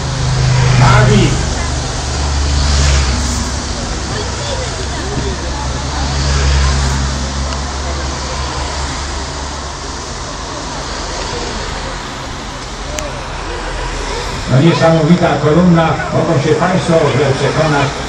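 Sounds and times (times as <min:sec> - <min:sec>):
cars driving past: 0:00.0 - 0:18.0
tyres hissing on wet road: 0:00.0 - 0:18.0.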